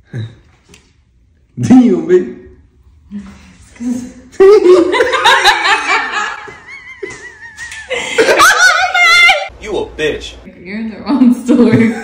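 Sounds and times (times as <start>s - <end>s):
people laughing hard: 4.4s - 9.4s.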